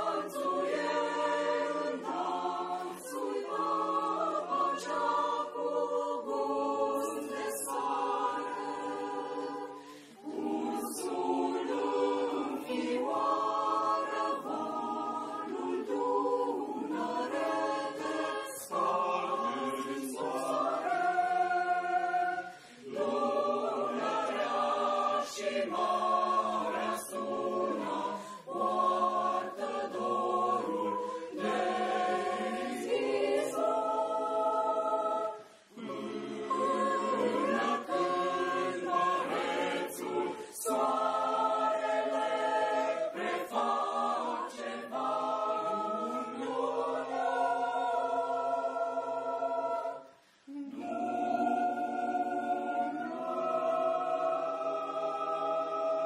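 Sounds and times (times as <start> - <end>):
mixed choir singing in harmony: 0.0 - 56.0.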